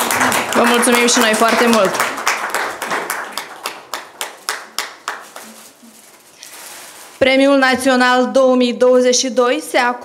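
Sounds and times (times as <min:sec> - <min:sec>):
people clapping in rhythm: 0:00.0 - 0:05.6.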